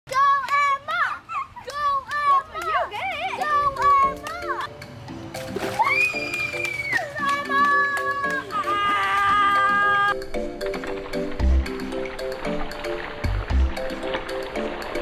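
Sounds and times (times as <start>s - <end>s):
young children shouting: 0.1s - 4.7s, 5.8s - 10.2s
background music: 3.2s - 15.0s.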